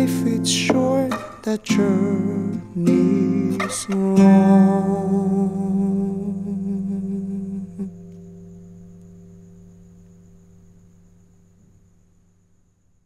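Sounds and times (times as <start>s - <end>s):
man humming a note: 0.0s - 8.2s
acoustic guitar chord ringing: 0.0s - 11.9s.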